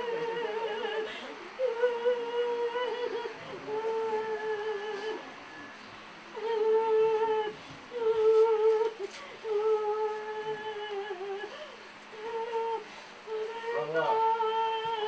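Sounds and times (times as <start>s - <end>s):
voices humming long notes: 0.0s - 11.5s.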